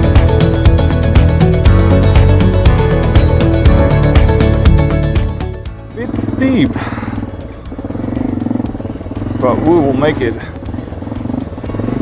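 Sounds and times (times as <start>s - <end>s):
background music: 0.0s - 12.0s
motorcycle engine running: 0.0s - 12.0s.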